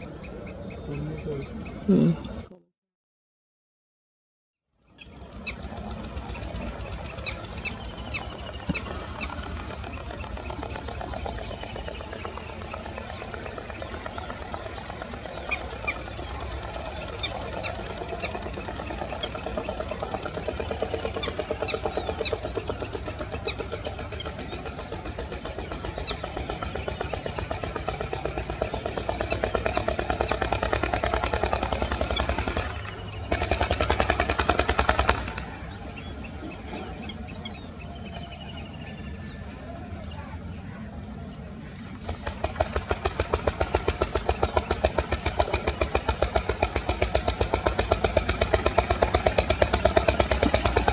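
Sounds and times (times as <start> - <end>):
sandpiper calling: 0.0 - 2.4, 4.9 - 40.5, 41.6 - 47.8, 48.4 - 50.9
steady low hum: 4.8 - 50.9.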